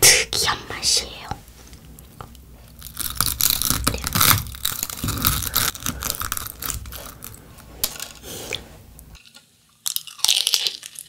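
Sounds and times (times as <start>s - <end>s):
spun sugar crackling and snapping: 1.7s - 11.0s.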